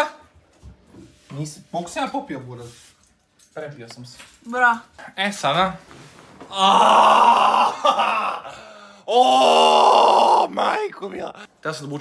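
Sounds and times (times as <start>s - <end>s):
man groaning loudly: 6.5s - 8.5s, 9.1s - 10.7s.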